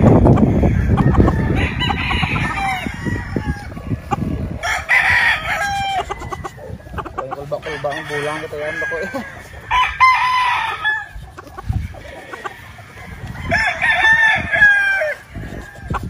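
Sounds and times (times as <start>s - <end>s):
roosters crowing: 0.0s - 16.0s.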